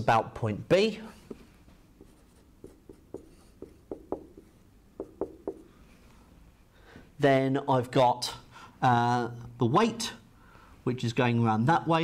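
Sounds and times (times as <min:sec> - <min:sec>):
marker pen writing on whiteboard: 0:01.2 - 0:05.8.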